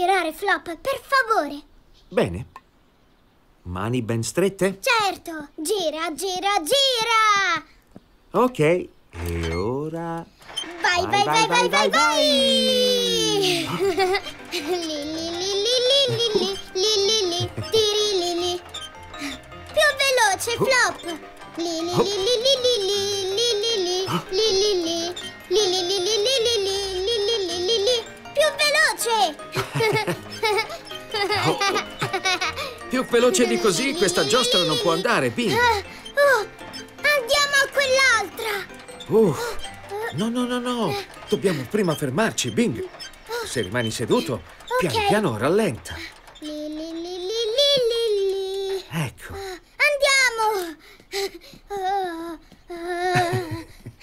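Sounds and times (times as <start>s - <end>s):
child-like voice singing held note: 10.6s - 18.8s
cartoon child's voice yodelling: 10.8s - 13.7s.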